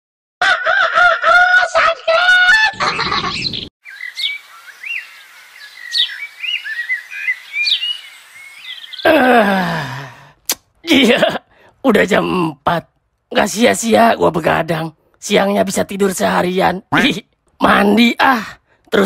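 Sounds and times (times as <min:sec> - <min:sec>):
rooster crowing: 0:00.4 - 0:02.0
small birds chirping: 0:02.8 - 0:09.4
soft outdoor hiss: 0:03.8 - 0:09.0
man groaning: 0:09.0 - 0:10.3.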